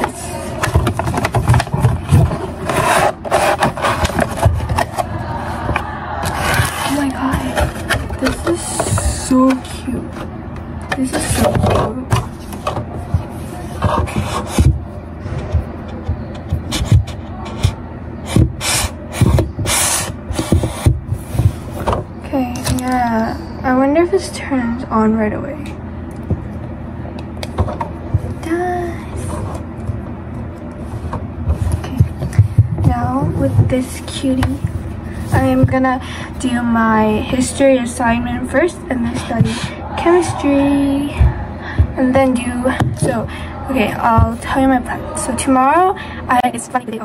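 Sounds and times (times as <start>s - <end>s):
cardboard and plastic packaging rustling: 0.0s - 10.3s.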